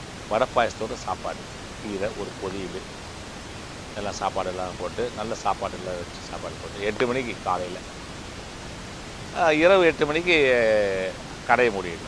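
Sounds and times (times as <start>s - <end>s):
steady background hiss: 0.0s - 12.0s
man speaking: 0.3s - 2.8s, 4.0s - 7.8s, 9.4s - 12.0s.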